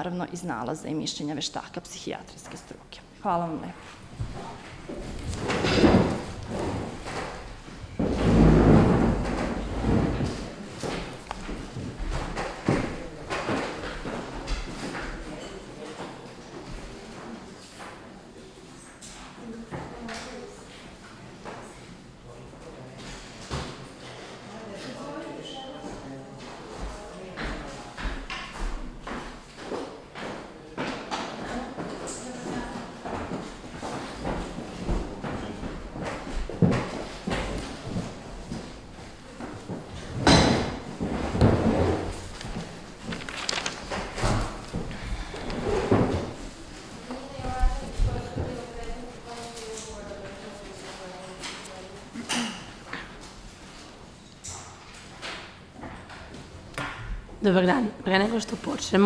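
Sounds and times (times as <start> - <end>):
footsteps on wooden floor: 3.8 - 13.0
furniture scraping: 3.8 - 15.2, 31.6 - 51.4
chairs moved on floor: 3.8 - 18.1, 26.4 - 54.0.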